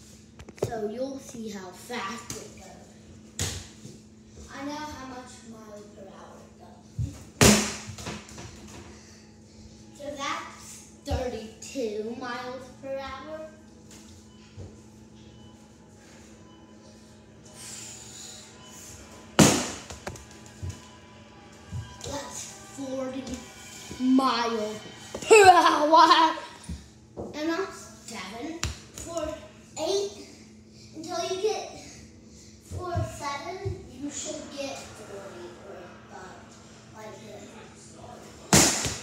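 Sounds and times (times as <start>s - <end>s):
ball hitting something hard: 19.4s - 20.2s, 38.5s - 39.0s.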